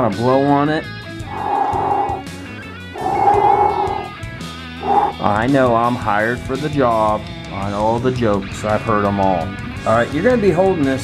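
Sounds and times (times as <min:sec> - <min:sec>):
rock music with guitar: 0:00.2 - 0:11.0
breaths blown through pursed lips: 0:01.2 - 0:02.4, 0:03.0 - 0:04.1, 0:04.8 - 0:05.2.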